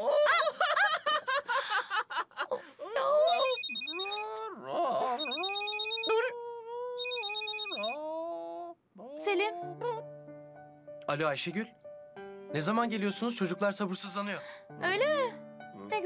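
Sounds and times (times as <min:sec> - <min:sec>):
mobile phone ringtone trilling: 0:03.3 - 0:04.4, 0:05.0 - 0:06.3, 0:07.0 - 0:08.0.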